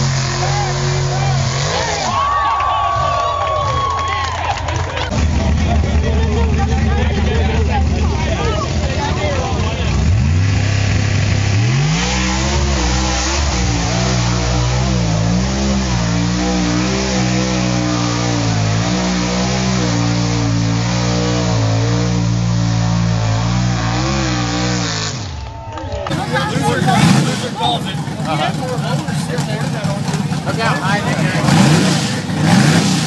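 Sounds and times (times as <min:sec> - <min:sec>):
truck engine revving: 0:00.0 - 0:33.0.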